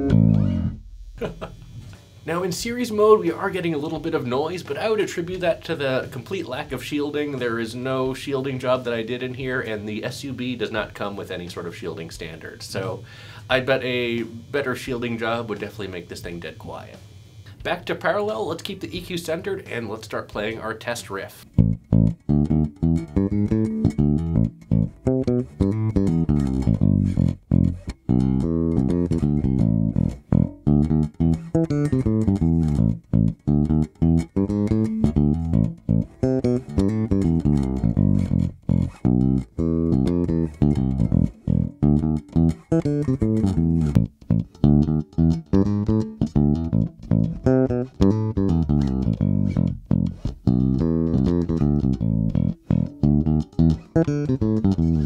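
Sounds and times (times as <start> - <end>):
electric bass riff: 0.0 - 16.8, 21.4 - 55.0.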